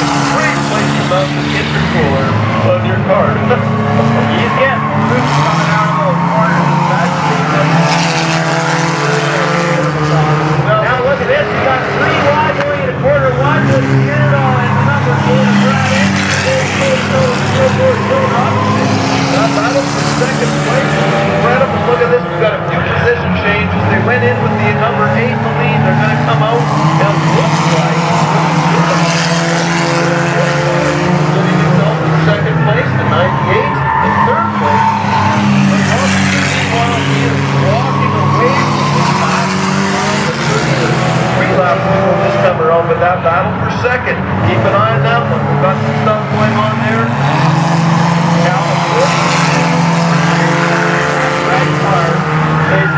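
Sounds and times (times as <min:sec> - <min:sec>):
race car engines passing: 0:00.0 - 0:52.9.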